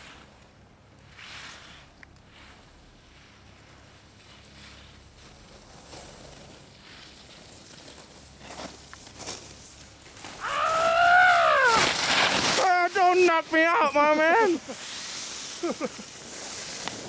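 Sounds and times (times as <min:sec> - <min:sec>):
skis scraping on snow: 0:00.0 - 0:00.4, 0:01.0 - 0:17.0
person yelling: 0:10.4 - 0:11.8.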